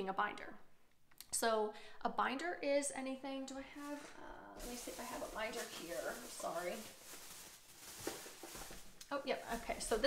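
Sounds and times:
rummaging and handling noises: 4.6 - 10.0.

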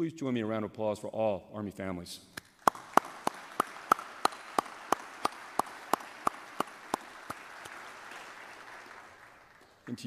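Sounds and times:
sharp evenly spaced clapping: 2.4 - 10.0
audience applause: 2.6 - 10.0.

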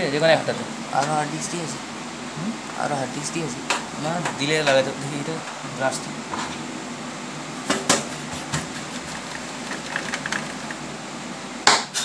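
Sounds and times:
fan-like room hum: 0.0 - 12.0.

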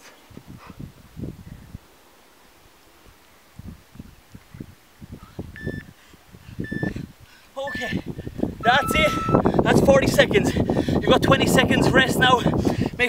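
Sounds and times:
electronic timer beeps: 5.6 - 5.9, 6.6 - 6.9, 8.6 - 9.4.

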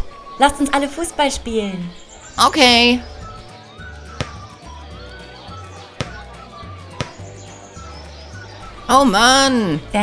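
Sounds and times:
birds chirping: 0.0 - 10.0
background music with bass: 2.3 - 10.0
football being kicked: 4.1 - 4.5, 6.0 - 6.3, 7.0 - 7.3.

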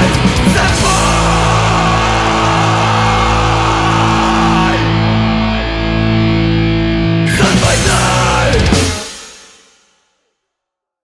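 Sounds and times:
distorted guitars sustained chord: 0.1 - 9.1.

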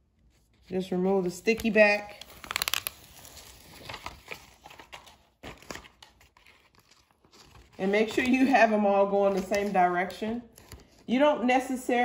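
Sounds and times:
contact paper rustling and crinkling: 0.0 - 11.1.

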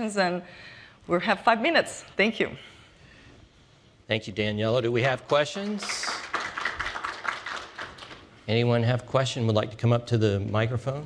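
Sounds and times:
audience applauding: 5.3 - 8.3.

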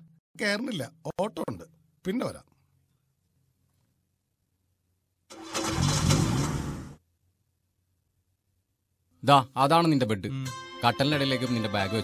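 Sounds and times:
car engine starting and revving: 5.3 - 7.0.

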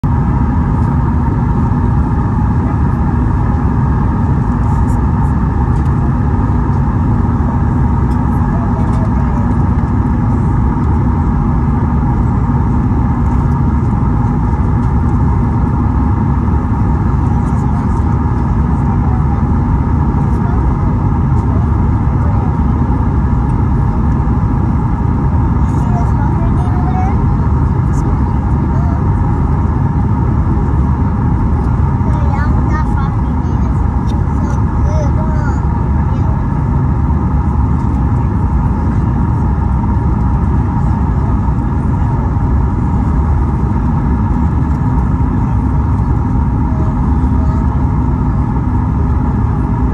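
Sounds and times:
airplane cabin engine roar: 0.0 - 49.9.

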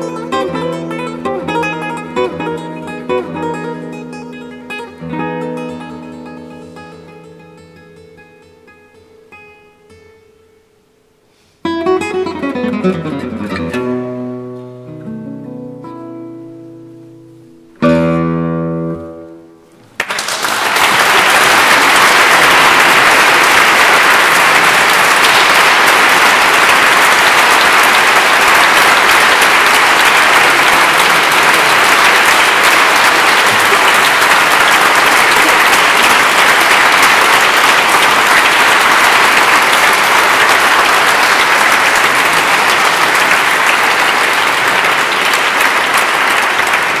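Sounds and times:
audience applauding: 0.0 - 3.8, 19.9 - 47.0.

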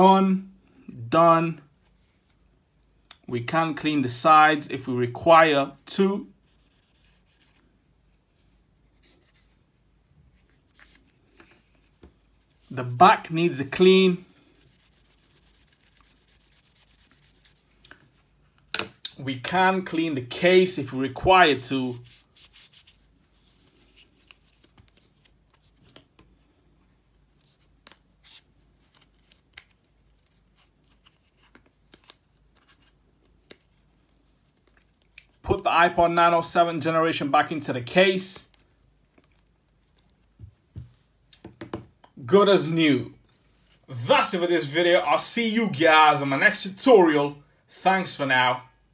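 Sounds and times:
light rubbing with cloth: 6.3 - 18.5, 21.5 - 25.8.

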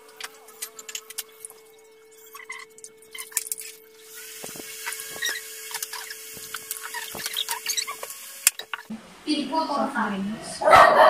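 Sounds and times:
steady hum: 0.0 - 10.6
sped-up squeaky chatter: 0.3 - 8.9
bottles clicking and clinking: 2.2 - 8.9.

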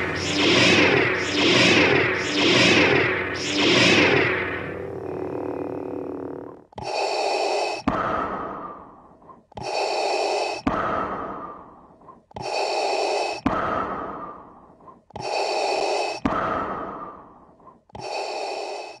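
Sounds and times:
mechanical respirator breathing: 0.0 - 7.9, 12.3 - 13.4, 15.1 - 16.2, 17.9 - 19.0.

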